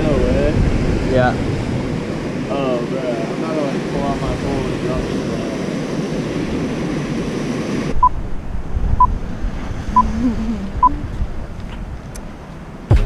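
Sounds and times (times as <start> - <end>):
rushing surf: 0.0 - 12.9
wind on microphone: 0.0 - 13.0.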